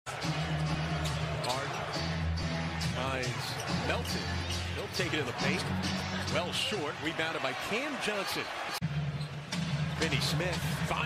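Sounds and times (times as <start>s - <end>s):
arena music: 0.1s - 7.8s.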